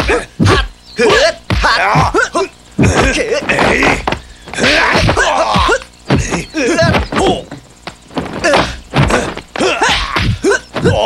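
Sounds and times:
fighters grunting and shouting: 0:00.0 - 0:07.6, 0:08.2 - 0:11.0.

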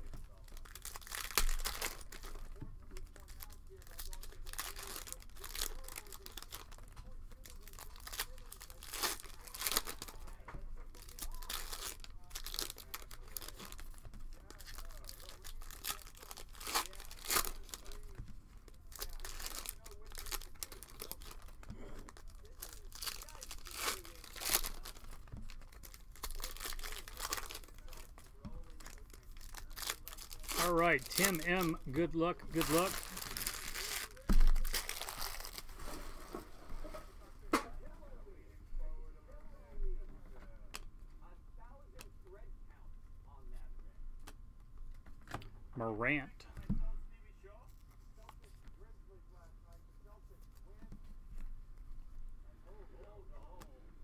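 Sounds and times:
foil wrappers tearing and crinkling: 0:00.0 - 0:37.0.

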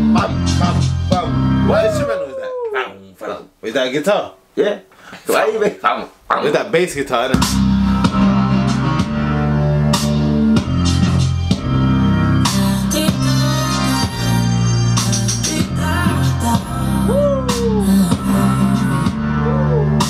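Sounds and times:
r and b track with bass guitar: 0:00.0 - 0:02.3, 0:07.3 - 0:20.0.

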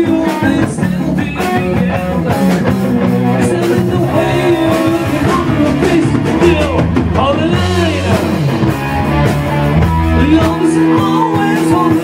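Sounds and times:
rock music with electric guitar: 0:00.0 - 0:12.0.

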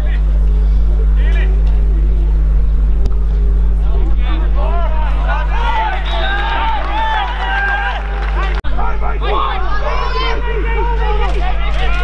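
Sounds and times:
distant players' voices: 0:00.0 - 0:12.0
loud low motor hum: 0:00.0 - 0:12.0.

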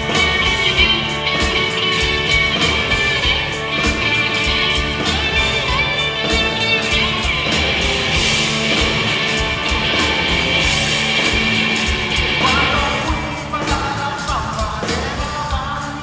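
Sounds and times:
guitar slide: 0:00.0 - 0:15.1
rock band playing live: 0:00.0 - 0:16.0.

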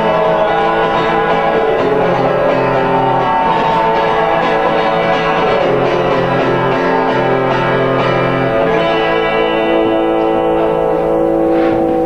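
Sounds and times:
acoustic guitars playing chords: 0:00.0 - 0:12.0.

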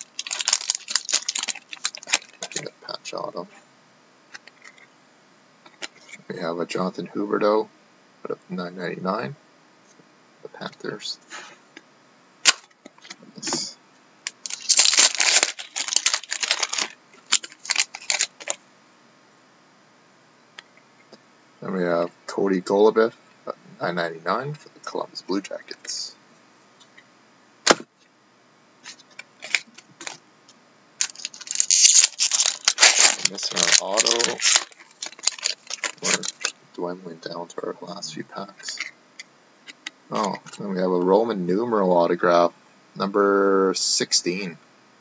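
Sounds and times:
foil wrapper crinkling and tearing: 0:00.0 - 0:02.7, 0:12.4 - 0:12.8, 0:14.2 - 0:18.6, 0:28.8 - 0:30.2, 0:31.0 - 0:36.6.

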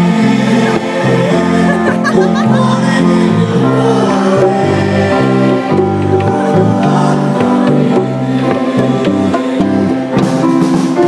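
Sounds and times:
bass: 0:00.0 - 0:11.0
piano: 0:00.0 - 0:11.0.

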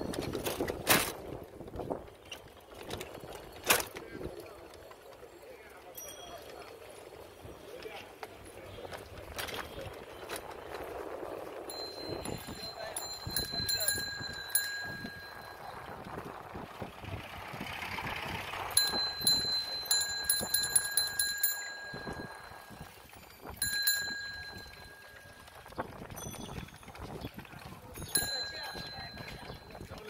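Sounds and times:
street noise: 0:00.0 - 0:30.0
bicycle bells ringing: 0:02.7 - 0:17.1, 0:18.0 - 0:30.0.

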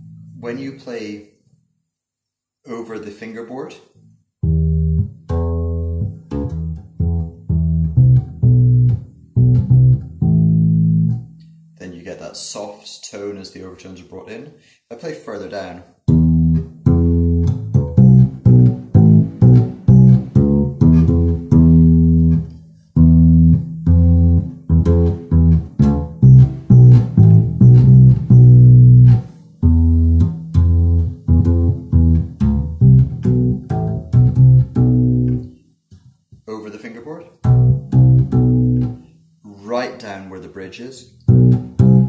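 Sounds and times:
plucked upright bass: 0:04.4 - 0:11.6, 0:16.1 - 0:35.5, 0:37.3 - 0:39.2, 0:41.2 - 0:42.0.

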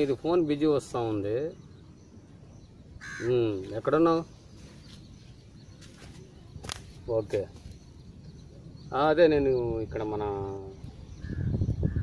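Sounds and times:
crow cawing: 0:03.0 - 0:03.4.

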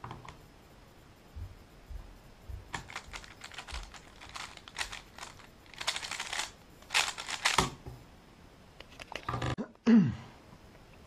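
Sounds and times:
puzzle cube clicking and rattling: 0:02.8 - 0:07.8.

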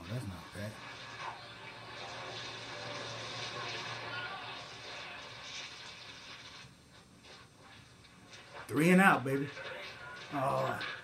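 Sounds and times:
television broadcast noise: 0:00.0 - 0:11.0.

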